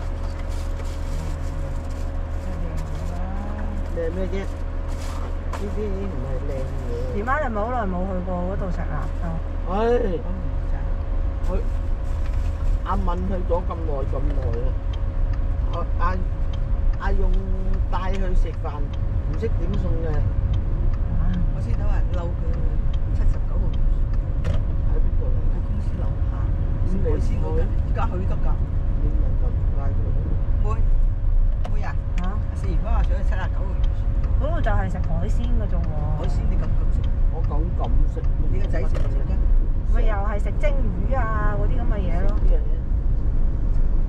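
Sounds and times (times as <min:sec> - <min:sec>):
faint constant hum: 0:00.0 - 0:44.0
road and engine rumble: 0:00.0 - 0:44.0.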